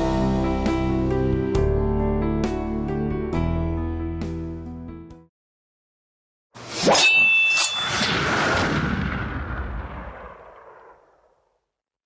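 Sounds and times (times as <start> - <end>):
booming crash: 7.8 - 11.4.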